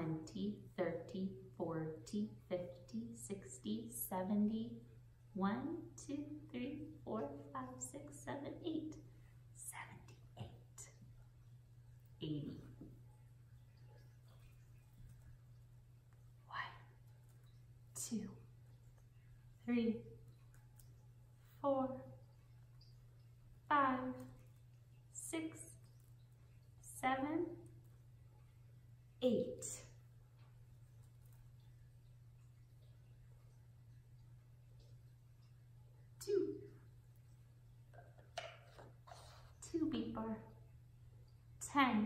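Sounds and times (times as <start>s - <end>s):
woman speaking softly: 0.0s - 4.8s, 5.4s - 11.0s, 12.2s - 12.8s, 16.5s - 17.0s, 17.9s - 18.5s, 19.6s - 20.1s, 21.6s - 22.1s, 23.7s - 24.4s, 25.2s - 25.8s, 26.8s - 27.7s, 29.2s - 30.0s, 36.2s - 36.7s, 39.6s - 40.6s
steady low hum: 0.0s - 42.0s.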